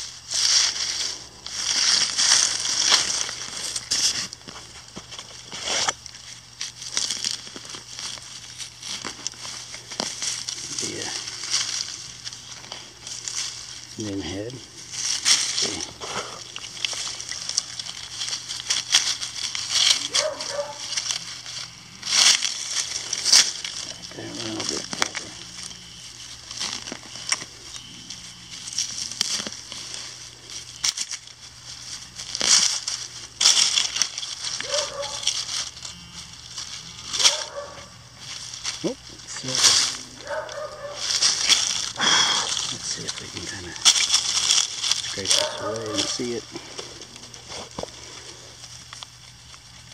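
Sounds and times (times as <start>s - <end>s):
crunching and scraping of dirt: 0.0s - 49.9s.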